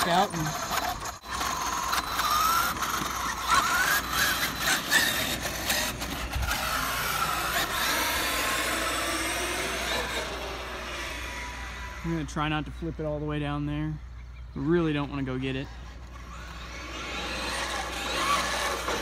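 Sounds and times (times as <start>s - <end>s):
electric toy truck motor whining: 0.0s - 12.6s, 15.3s - 19.0s.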